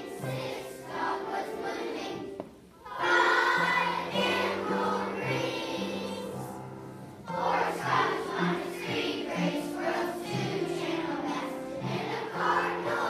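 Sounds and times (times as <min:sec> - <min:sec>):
children's choir singing: 0:00.0 - 0:13.0
upright piano: 0:00.0 - 0:13.0.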